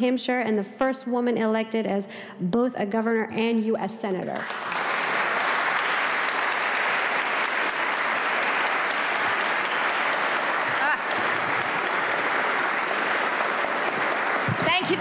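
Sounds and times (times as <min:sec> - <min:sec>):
crowd applause: 0:04.4 - 0:15.0.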